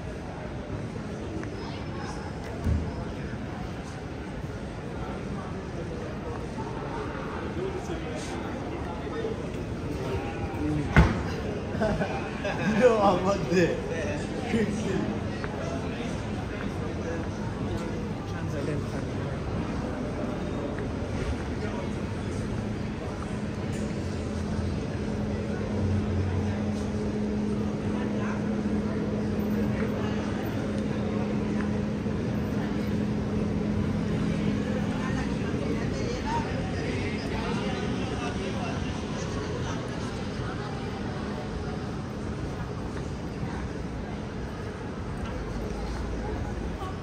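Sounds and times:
passers-by talking indistinctly: 0.0s - 47.0s
traffic noise: 0.0s - 47.0s
steady low hum: 13.6s - 47.0s.

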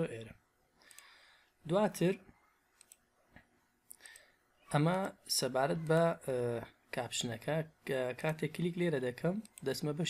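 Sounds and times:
person speaking: 0.0s - 10.0s
computer mouse clicks: 0.8s - 1.1s, 2.8s - 3.1s.

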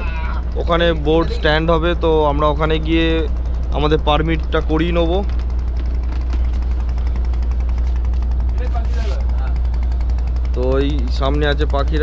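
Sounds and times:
boat diesel engine droning: 0.0s - 12.0s.

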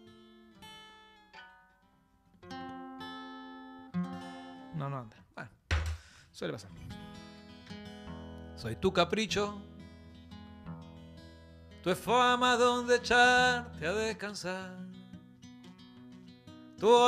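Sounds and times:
acoustic guitar plucked: 0.0s - 4.9s, 6.7s - 17.0s
brief thump: 5.7s - 6.1s.

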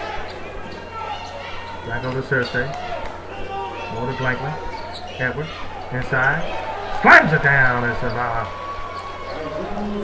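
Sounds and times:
voices in arena: 0.0s - 10.0s.

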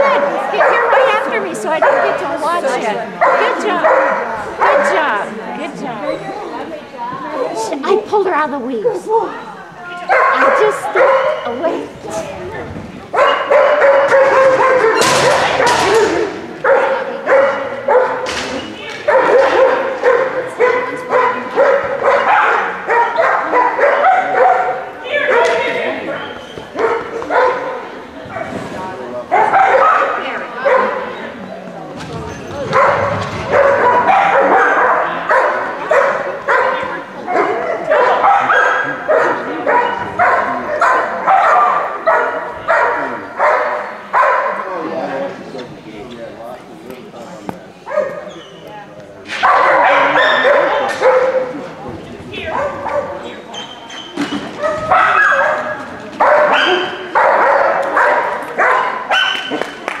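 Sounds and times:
dogs barking and yipping: 0.0s - 2.4s, 3.2s - 5.1s, 10.1s - 11.9s, 13.1s - 18.3s, 19.0s - 28.6s, 29.3s - 31.2s, 32.7s - 44.6s, 49.4s - 51.6s, 52.4s - 59.7s.

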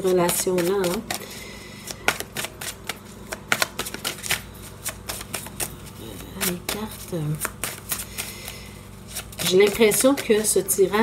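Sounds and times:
cards being shuffled: 0.0s - 1.2s, 1.8s - 10.7s.

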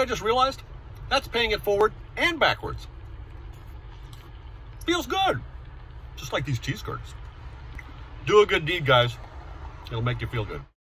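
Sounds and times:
car engine idling: 0.0s - 10.6s.

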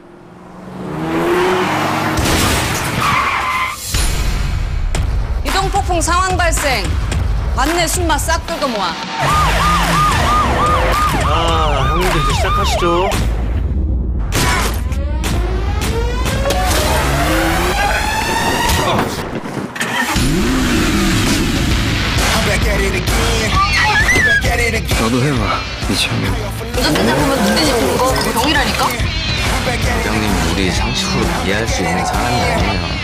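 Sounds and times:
car tyres screeching: 0.0s - 4.0s, 16.1s - 21.6s, 23.4s - 26.0s, 26.7s - 33.0s.

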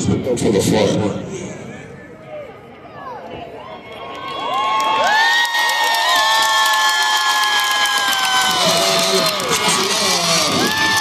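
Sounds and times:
crowd cheering and shouting: 1.7s - 11.0s.

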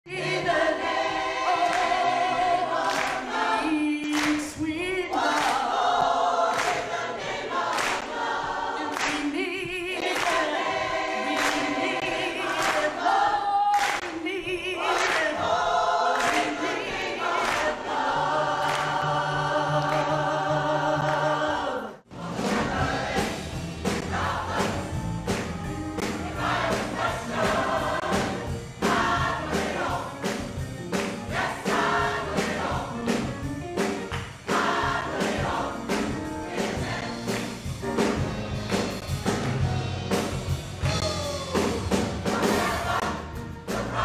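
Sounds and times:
mixed choir singing gospel: 0.1s - 39.5s, 40.9s - 44.0s.

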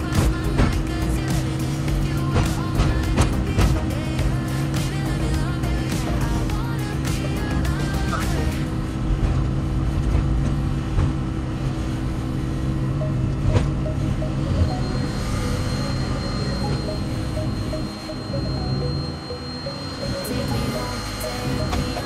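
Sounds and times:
music playing: 0.0s - 8.8s, 13.0s - 22.0s
diesel engine running: 0.0s - 22.0s.

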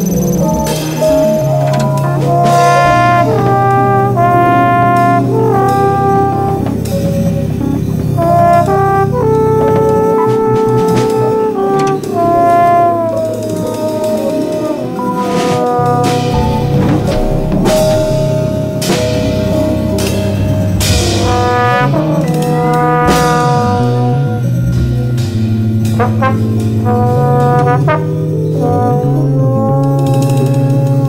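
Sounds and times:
brass sliding held notes: 0.0s - 31.0s
low sustained bass: 14.8s - 31.0s.

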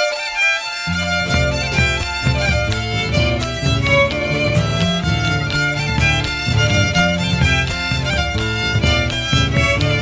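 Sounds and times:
fiddle melody: 0.0s - 10.0s
lower accompanying instruments: 0.0s - 10.0s
steady beat: 0.9s - 10.0s.

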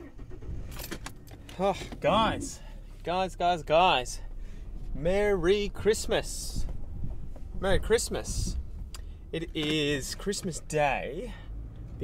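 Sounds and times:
car engine running: 0.0s - 12.0s.

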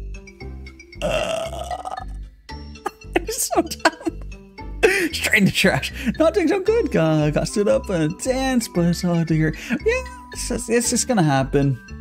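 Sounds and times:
person burping loudly: 1.0s - 2.2s.

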